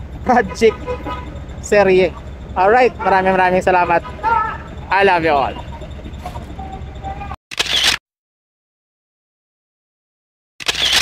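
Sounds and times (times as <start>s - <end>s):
faint street background: 0.0s - 8.0s.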